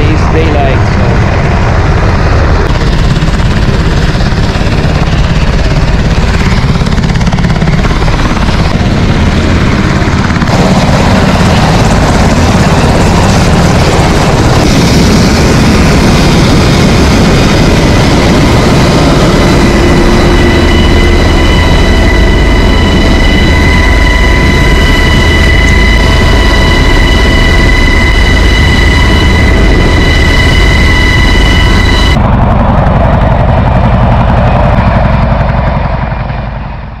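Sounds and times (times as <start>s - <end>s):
helicopter rotor and engine noise: 0.0s - 37.0s
high turbine whine: 0.0s - 37.0s.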